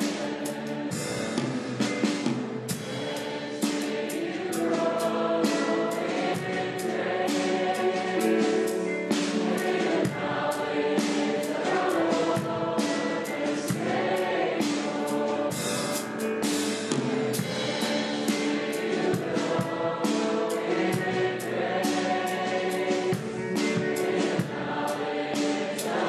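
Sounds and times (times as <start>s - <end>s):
choir singing worship song: 0.0s - 26.0s
instrumental accompaniment with beat: 0.0s - 26.0s.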